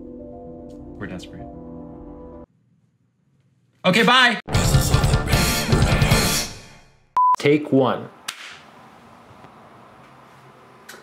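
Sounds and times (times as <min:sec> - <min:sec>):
sharp clap: 0:08.3 - 0:08.6.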